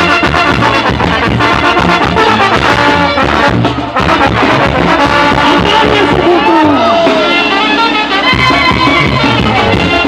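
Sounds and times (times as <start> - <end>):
pulsing bass: 0.0 - 6.9
brass band playing lively tune: 0.0 - 10.0.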